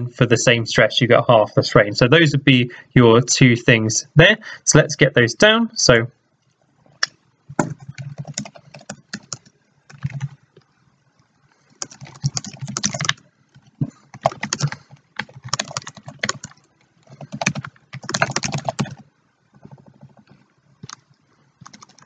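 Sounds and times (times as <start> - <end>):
typing on computer keyboard: 7.6 - 10.4, 11.8 - 19.0, 19.6 - 22.0.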